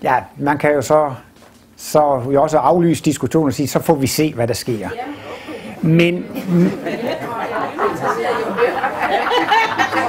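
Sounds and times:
chatter of overlapping voices: 4.4 - 10.0.

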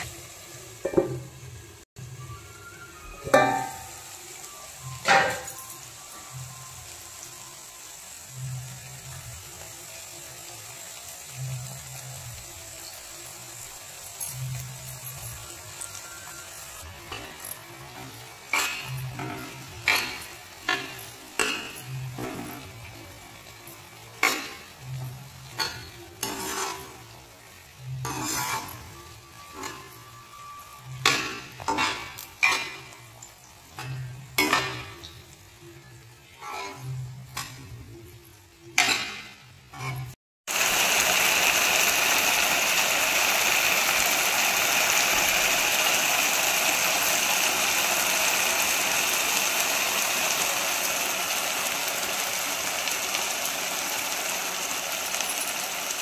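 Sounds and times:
faint sizzle of frying: 0.0 - 56.0
spatula scraping and knocking pan: 28.1 - 28.8.

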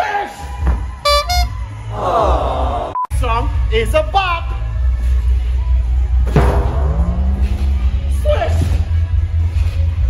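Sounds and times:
comic horn honks: 1.0 - 1.7
test-tone beep: 1.1 - 1.5.

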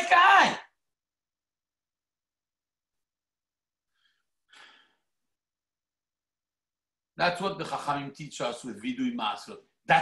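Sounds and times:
man breathing: 3.8 - 5.4.

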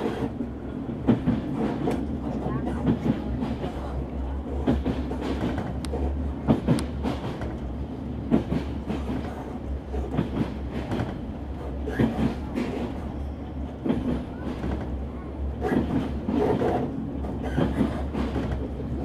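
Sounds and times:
train rumbling on rails: 0.0 - 19.0.

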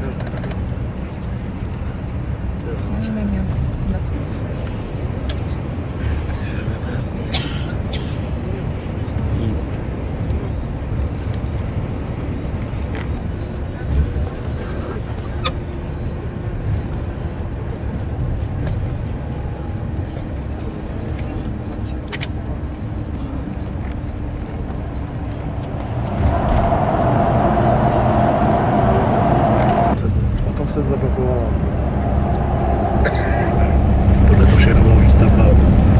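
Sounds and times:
droning hum in tunnel: 0.0 - 35.9
engine and tyre rumble: 0.0 - 35.9.

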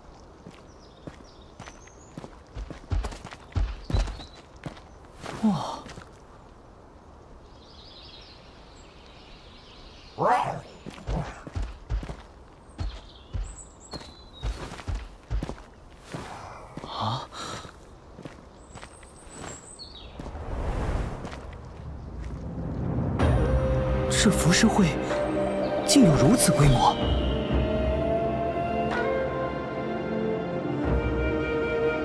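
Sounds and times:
footsteps on stone paving: 0.0 - 6.5, 10.4 - 20.5, 21.1 - 23.0.

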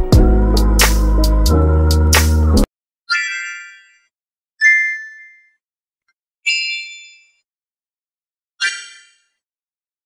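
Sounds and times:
bell-like chime notes: 6.5 - 7.4.

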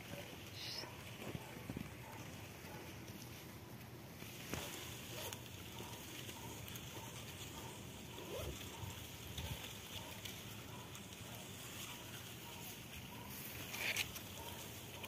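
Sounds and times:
rustling in dry leaves: 0.0 - 15.0.

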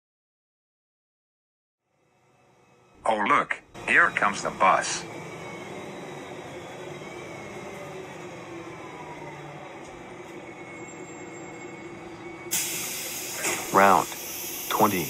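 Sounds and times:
bus engine running: 1.9 - 15.0
loud air brake hiss: 12.4 - 15.0.

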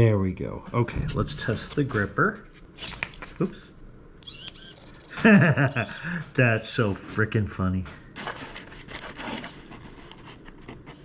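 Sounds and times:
servo high-pitched whir: 4.2 - 5.2
servo click: 4.2 - 5.9.

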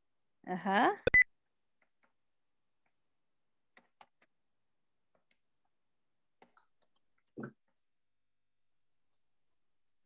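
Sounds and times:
short electronic beep: 1.1 - 1.3.

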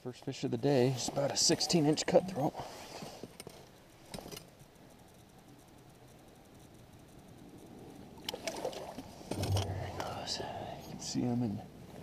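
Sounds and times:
faint low hush: 9.3 - 11.1.

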